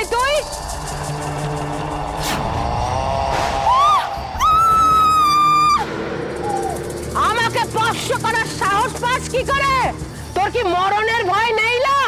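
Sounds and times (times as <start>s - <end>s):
dramatic background music: 0.0s - 12.0s
woman screaming: 3.7s - 5.9s.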